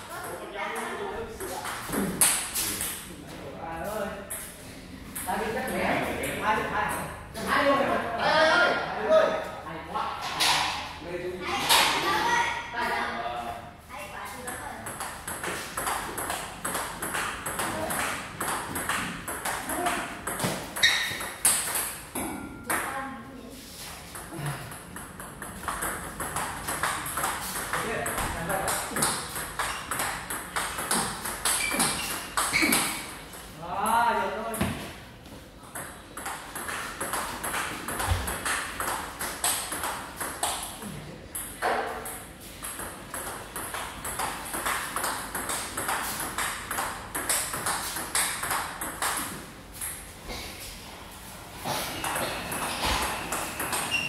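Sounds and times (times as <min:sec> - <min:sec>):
people talking: 0:11.4 - 0:14.9.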